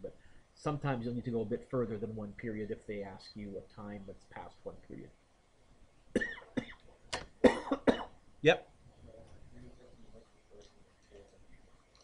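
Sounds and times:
man coughing: 6.2 - 6.8, 7.4 - 8.1.

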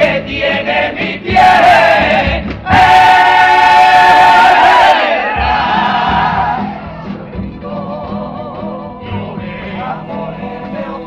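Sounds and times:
male chorus singing in harmony: 0.0 - 11.0.

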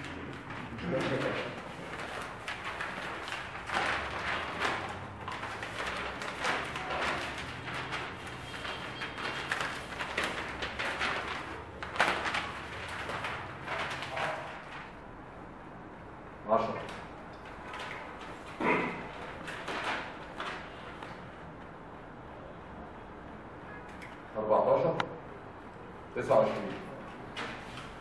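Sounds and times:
paper ballots rustling: 0.0 - 15.1, 16.7 - 21.6, 26.3 - 28.0.

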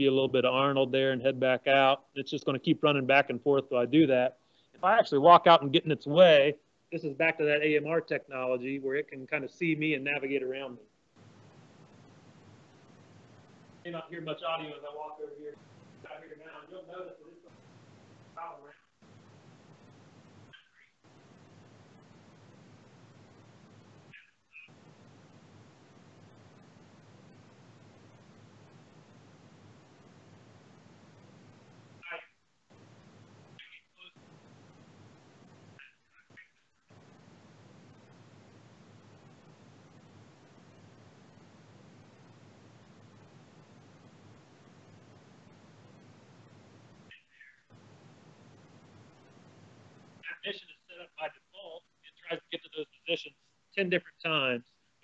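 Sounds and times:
faint room hum: 0.0 - 55.0.

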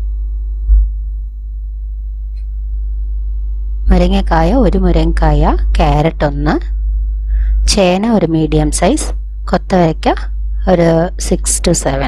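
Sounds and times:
steady low hum: 0.0 - 12.0
faint high steady tones: 2.2 - 12.0.

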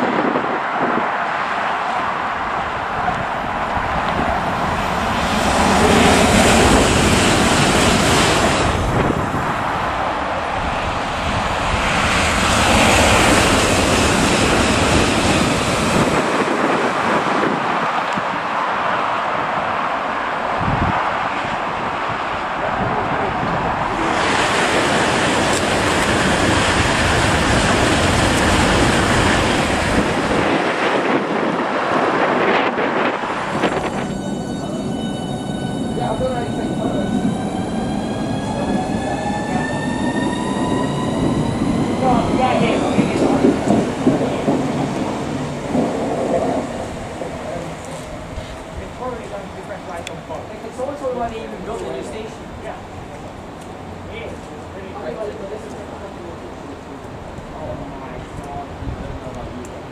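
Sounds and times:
high-speed trains rushing past: 0.0 - 59.9
electric train motors whining: 33.5 - 48.6.

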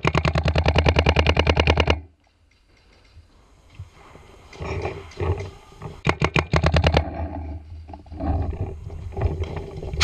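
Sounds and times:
rapid paintball marker shots: 0.0 - 2.1, 6.0 - 7.0.

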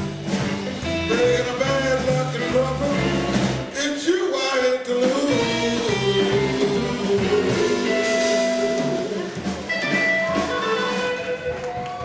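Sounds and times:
live blues band music: 0.0 - 12.0.

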